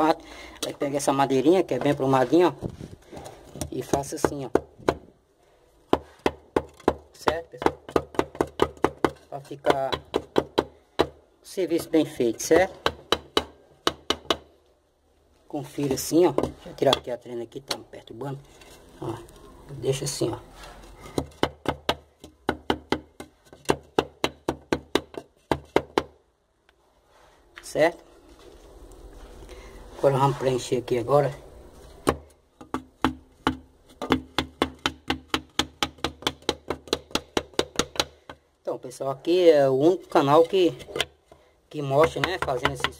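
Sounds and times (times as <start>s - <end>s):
sharp knocks on brickwork: 3.6s - 5.1s, 5.9s - 11.2s, 12.5s - 14.5s, 21.0s - 26.2s, 32.0s - 38.4s.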